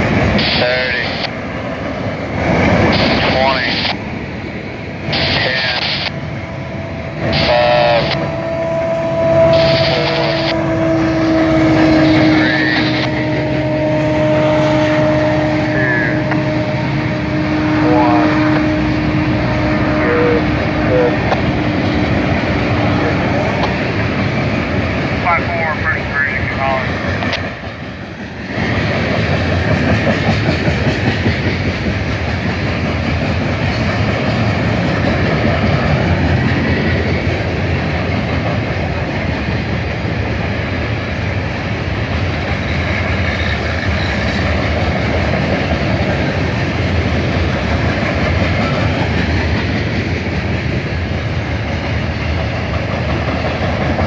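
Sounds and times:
long steady tone: 5.0s - 23.8s
freight cars rumbling past: 6.2s - 54.0s
wheels clacking over rail joints: 28.5s - 54.0s.

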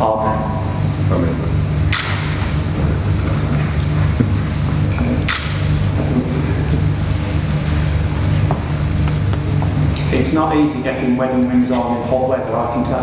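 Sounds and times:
loud low rumble: 0.0s - 13.0s.

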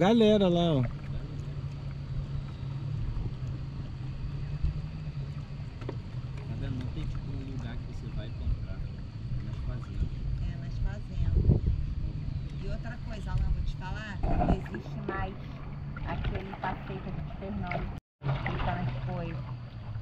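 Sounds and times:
moving water: 0.0s - 20.0s
wind rumble: 0.0s - 20.0s.

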